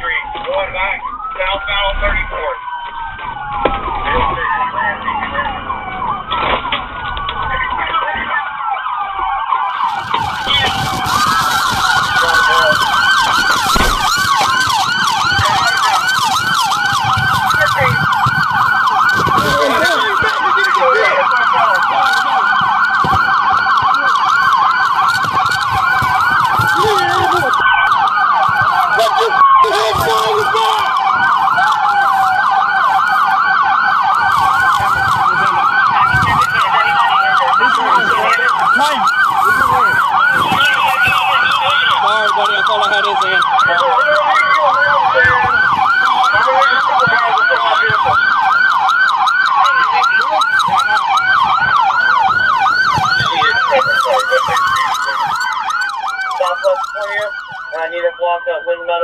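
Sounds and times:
police siren wail: 0.0s - 59.0s
police siren yelp: 0.0s - 59.0s.

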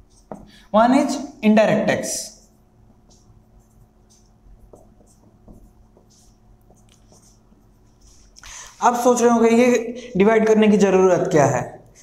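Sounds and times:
marker writing on whiteboard: 0.0s - 9.2s.

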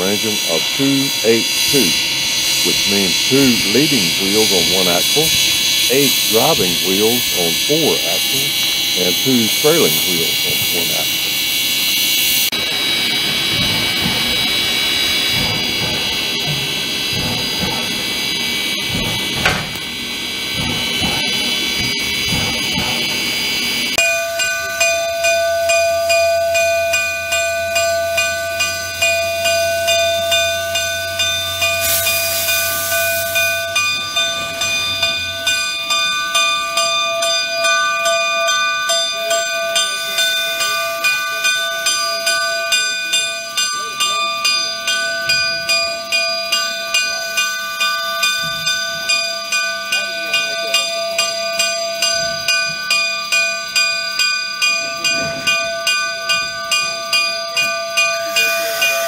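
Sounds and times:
steam locomotive hissing: 0.0s - 52.9s, 54.6s - 59.0s
locomotive bell ringing: 0.0s - 59.0s.

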